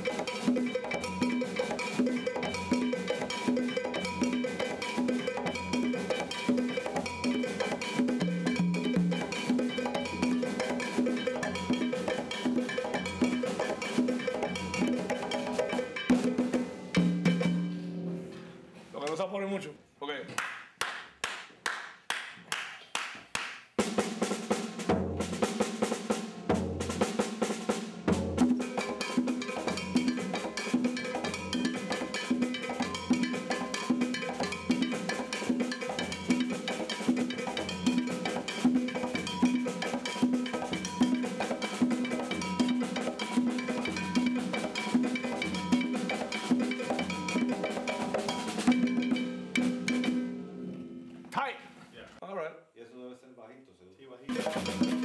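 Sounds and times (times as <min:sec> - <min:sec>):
cowbell: 0:00.0 - 0:16.6, 0:28.6 - 0:50.1, 0:54.3 - 0:55.0
sharp percussion strikes: 0:00.0 - 0:18.4, 0:23.8 - 0:51.2, 0:54.3 - 0:55.0
congas played by hand: 0:00.0 - 0:19.2, 0:20.4 - 0:51.5, 0:54.3 - 0:55.0.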